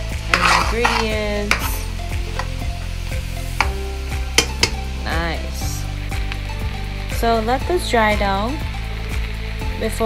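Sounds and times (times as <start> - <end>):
metal utensil scraping a pot: 0.2 - 2.7, 4.4 - 4.8
metal clicks on pot: 4.4 - 4.8.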